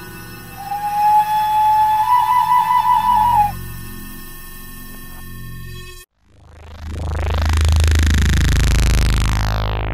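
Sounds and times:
recorder long held note: 0:00.0 - 0:03.8.

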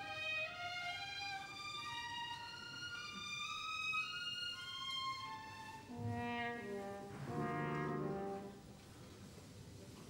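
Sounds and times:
orchestral ballet music: 0:00.0 - 0:08.7
brass chords: 0:05.9 - 0:08.8.

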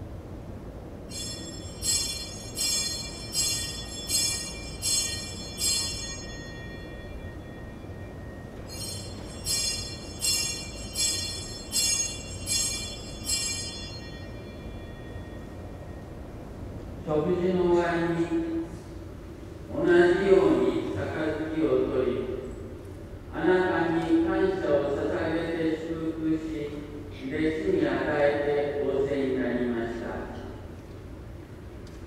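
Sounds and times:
small altar bell ringing: 0:01.0 - 0:18.8.

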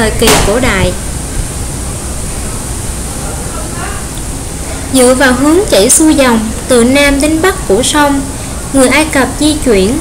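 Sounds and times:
steady rushing hiss: 0:00.0 - 0:10.0.

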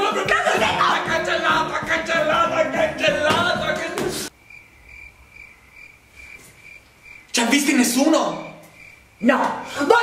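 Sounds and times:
cricket chirping: 0:04.3 - 0:09.8.

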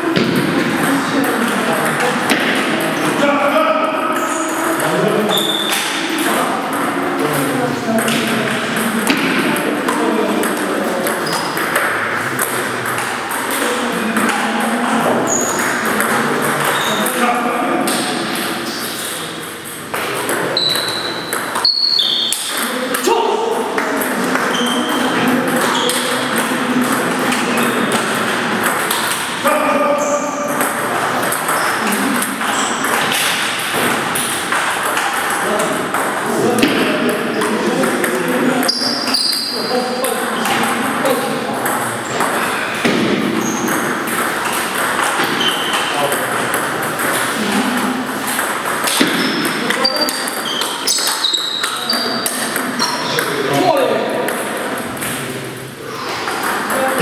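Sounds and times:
voices talking: 0:00.0 - 0:33.2, 0:34.0 - 0:57.0.

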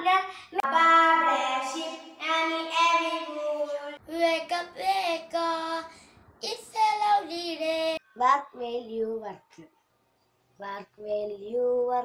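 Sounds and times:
child singing: 0:00.0 - 0:09.6, 0:10.6 - 0:12.0.

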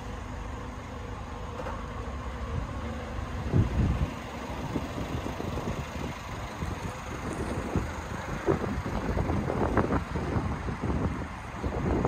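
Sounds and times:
wind buffeting microphone: 0:03.4 - 0:12.0.

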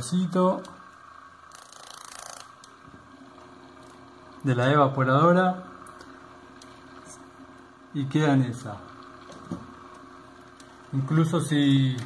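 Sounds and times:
fan motor humming: 0:00.0 - 0:12.0.

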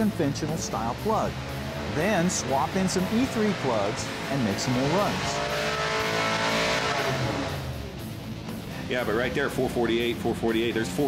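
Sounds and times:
engine running at high revs: 0:00.0 - 0:11.0.

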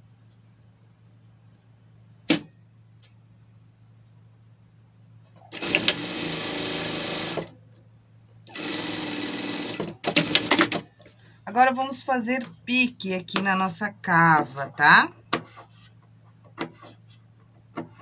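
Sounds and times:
low steady hum: 0:00.0 - 0:06.3, 0:07.2 - 0:08.7, 0:10.9 - 0:18.0
sewing machine stitching: 0:05.5 - 0:07.5, 0:08.5 - 0:10.9.

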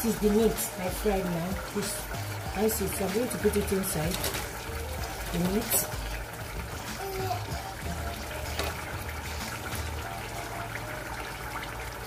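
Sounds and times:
faint music: 0:00.0 - 0:12.0
stew bubbling in a pot: 0:00.0 - 0:12.0.

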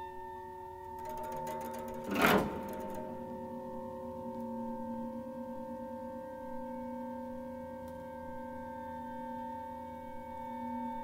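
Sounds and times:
quiet percussion rattle: 0:00.8 - 0:04.6.

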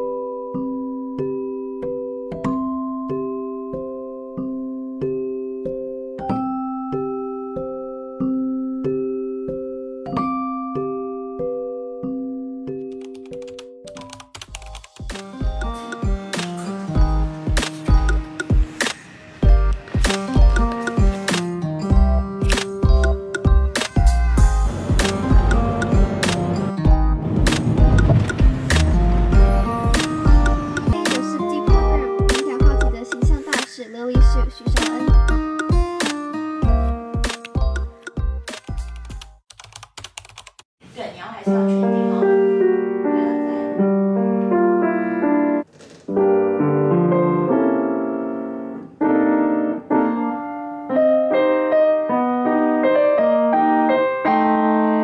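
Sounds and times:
soft piano-like music: 0:00.0 - 0:39.7, 0:41.5 - 0:55.0
keyboard typing clicks: 0:12.8 - 0:16.5, 0:37.3 - 0:40.6.

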